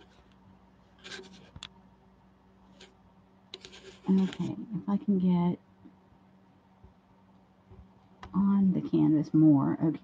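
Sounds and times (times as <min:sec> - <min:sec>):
faint scraping and rustling: 0:00.0 - 0:01.7, 0:02.6 - 0:03.0, 0:03.6 - 0:04.8
low steady hum: 0:00.0 - 0:10.0.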